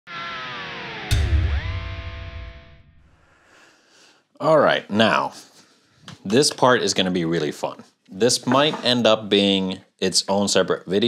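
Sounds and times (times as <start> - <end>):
electric guitar chord diving in pitch: 0.1 - 3.2
heavy low hit: 1.0 - 3.2.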